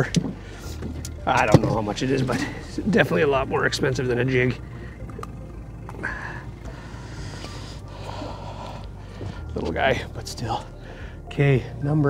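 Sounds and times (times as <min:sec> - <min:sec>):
low rumble of open water: 0:00.0 - 0:12.0.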